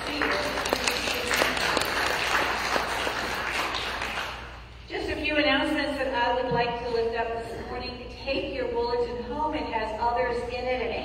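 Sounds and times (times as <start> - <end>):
crowd applauding: 0.0 - 4.6.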